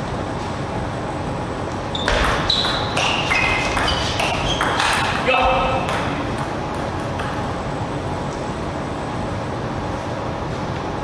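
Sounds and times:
table tennis ball rally: 0:01.9 - 0:07.7.

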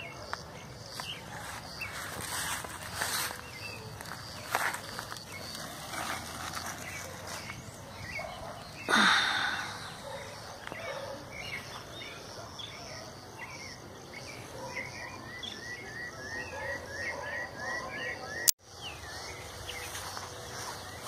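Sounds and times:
birds chirping: 0:00.0 - 0:21.0
outdoor ambience: 0:00.0 - 0:21.0.

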